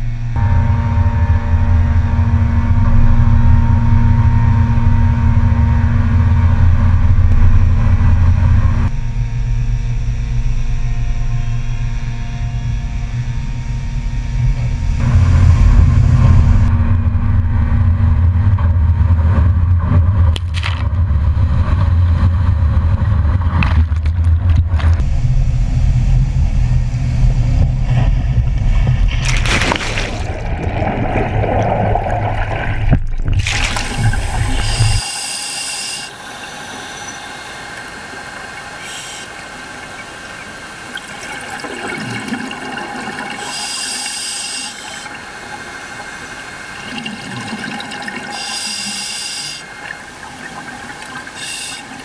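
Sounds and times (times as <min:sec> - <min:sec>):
deep rumbling surge of seawater: 0:21.0 - 0:35.0
diver exhaling bubbles underwater: 0:28.1 - 0:35.0.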